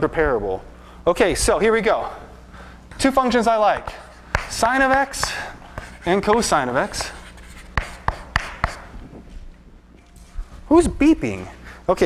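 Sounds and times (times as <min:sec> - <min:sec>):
chalk scratching on blackboard: 0:02.9 - 0:08.9
chalk tapping on board: 0:02.9 - 0:08.9.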